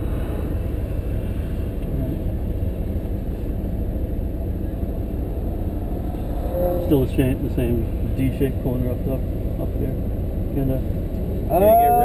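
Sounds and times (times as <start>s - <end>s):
car engine running inside cabin: 0.0s - 12.0s.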